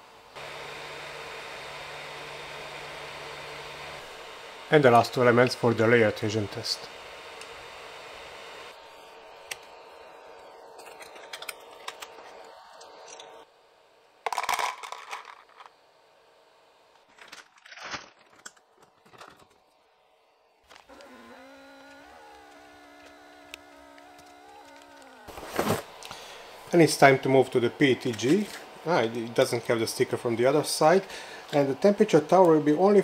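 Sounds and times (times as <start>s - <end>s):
electric vacuum pump humming: 0.0s - 17.4s, 18.3s - 33.0s
plastic bag crinkling: 17.1s - 18.4s.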